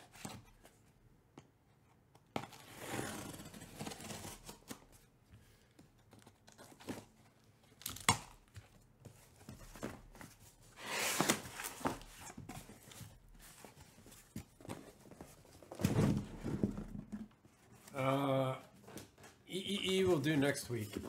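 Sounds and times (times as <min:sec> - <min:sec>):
cardboard scraping: 0:09.1 - 0:18.0
tape tearing: 0:10.8 - 0:12.2.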